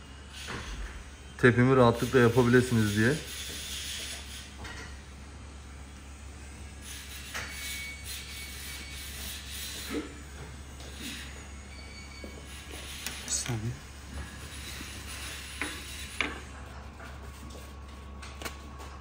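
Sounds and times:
steady low hum: 9.9s - 19.0s.

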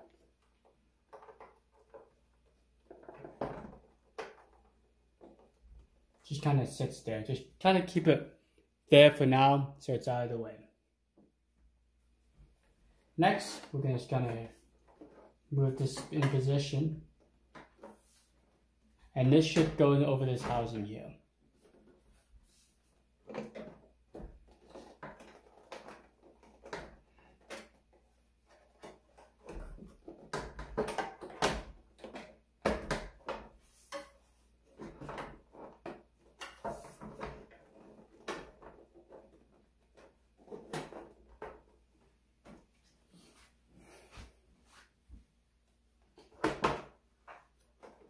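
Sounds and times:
hard plastic parts clicking and knocking: 0.0s - 5.9s, 23.2s - 42.8s, 46.0s - 48.0s.

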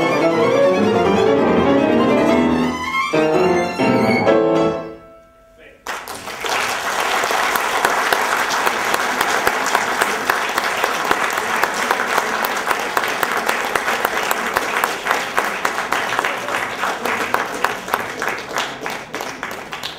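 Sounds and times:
audience applauding: 5.8s - 19.9s.

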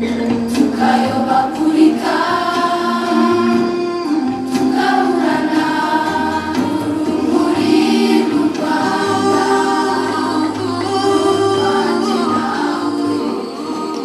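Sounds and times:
choir singing slow song: 0.0s - 14.0s
low steady accompaniment: 0.0s - 14.0s.

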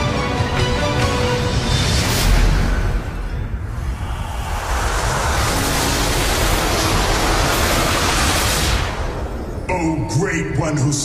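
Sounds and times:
magic smoke rushing whoosh: 3.4s - 9.7s.

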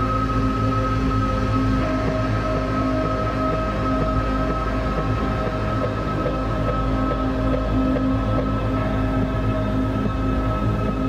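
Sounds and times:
dark ambient guitar drone: 0.0s - 11.0s.

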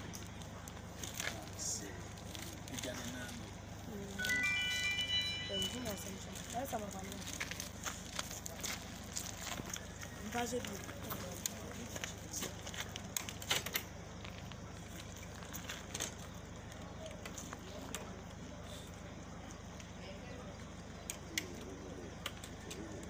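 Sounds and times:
faint indistinct voices: 0.0s - 23.0s
low outdoor hum: 0.0s - 23.0s.

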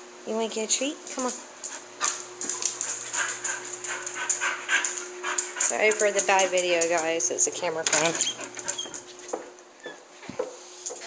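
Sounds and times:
dog panting quickly: 1.6s - 7.0s.

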